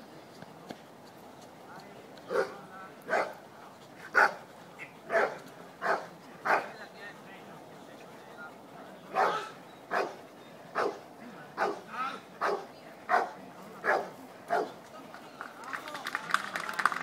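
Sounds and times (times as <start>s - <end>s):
large dog barking: 2.3s - 3.4s, 4.1s - 4.4s, 5.1s - 6.7s, 9.1s - 14.7s
hand-clapping: 14.8s - 17.0s.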